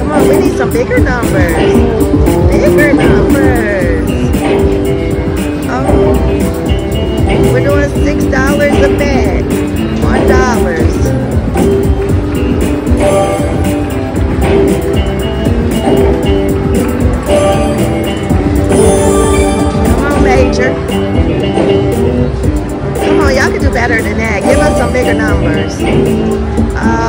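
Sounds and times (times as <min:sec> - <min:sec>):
slot machine bonus music: 0:10.1 - 0:22.3, 0:24.4 - 0:26.4.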